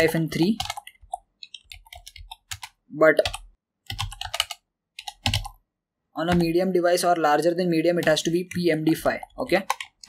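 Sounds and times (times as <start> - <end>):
computer keyboard typing: 0.0 - 5.6, 6.2 - 6.6, 7.9 - 10.0.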